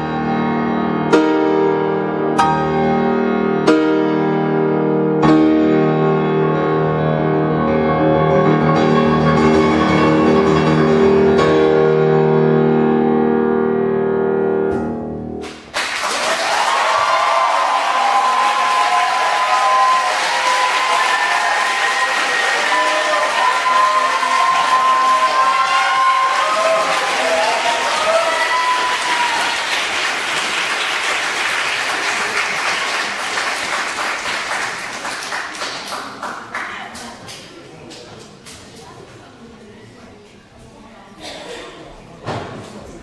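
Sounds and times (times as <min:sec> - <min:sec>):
piano: 0:00.0 - 0:36.7
audience applauding: 0:15.4 - 0:38.3.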